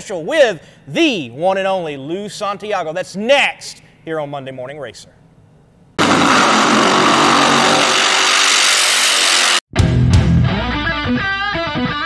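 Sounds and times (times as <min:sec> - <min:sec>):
race car engine at full throttle: 0:06.0 - 0:09.5.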